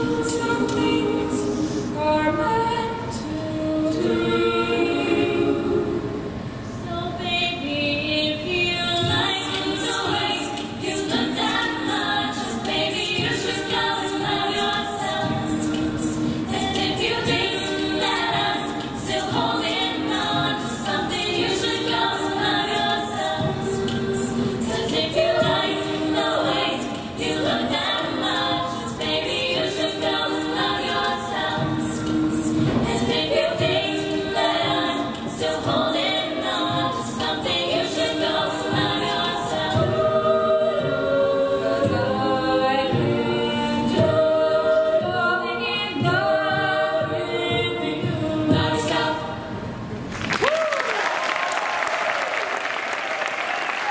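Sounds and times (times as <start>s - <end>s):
choir singing in harmony: 0.0s - 50.1s.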